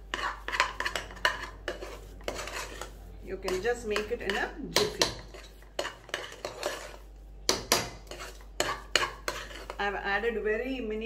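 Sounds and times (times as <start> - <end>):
metal spoon scraping pot: 0.0 - 9.9.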